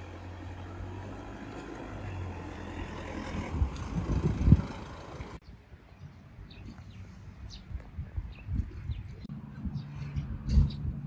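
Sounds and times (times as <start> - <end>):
truck engine hum: 0.0 - 5.4
road noise: 0.0 - 11.0.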